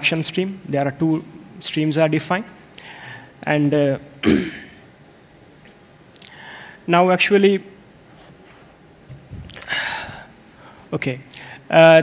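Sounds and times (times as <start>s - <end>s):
man coughing: 4.2s - 4.8s.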